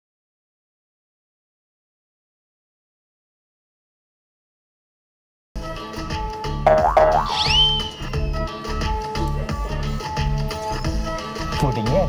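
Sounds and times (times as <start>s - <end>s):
cartoon pitch bend effect: 6.7s - 8.4s
background music with bass beat: 6.7s - 8.6s
rising whistle-like glide: 6.9s - 8.4s.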